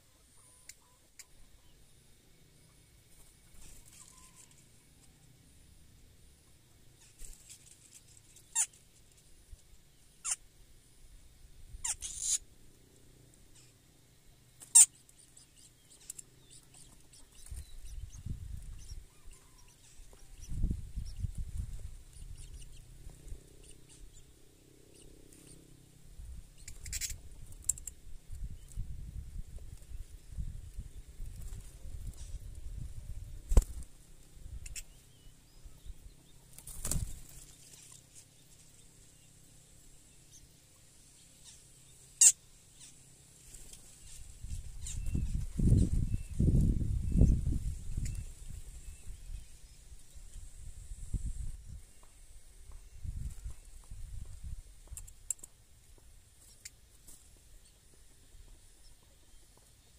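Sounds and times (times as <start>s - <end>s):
nestlings begging chirps: 2.7s - 4.7s, 6.9s - 8.8s, 9.9s - 10.4s, 11.8s - 13.8s, 14.5s - 29.1s, 30.9s - 53.9s.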